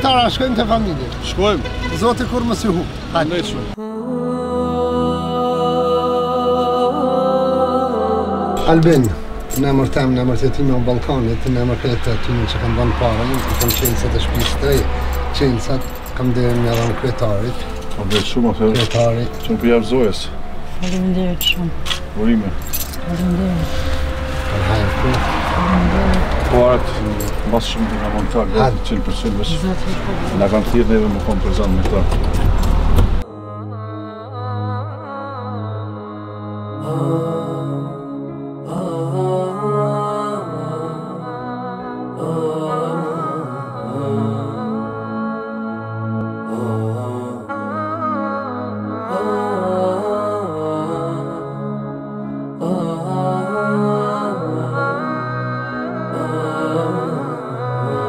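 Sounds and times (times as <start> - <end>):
men talking: 0.0 - 3.8, 8.6 - 20.4, 22.0 - 22.9, 24.5 - 32.3
slow music of long held notes: 3.7 - 31.8, 33.2 - 58.0
keys jingling: 13.3 - 23.4, 27.0 - 28.3.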